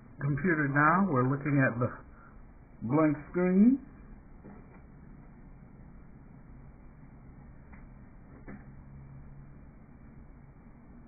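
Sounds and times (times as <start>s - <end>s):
desktop computer running: 0.0s - 11.0s.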